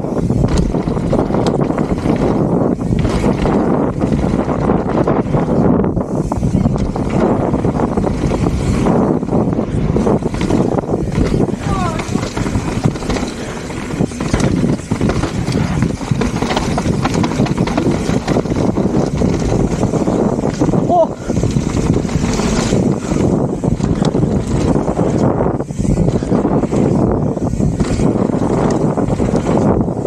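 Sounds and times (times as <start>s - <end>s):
bike rattling and knocking: 0.0s - 30.0s
tyres on dirt trail: 0.0s - 30.0s
wind buffeting microphone: 0.0s - 30.0s.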